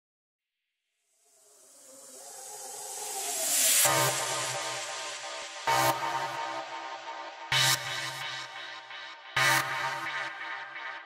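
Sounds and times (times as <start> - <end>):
synthetic rising noise sweep: 1.1 - 5.9.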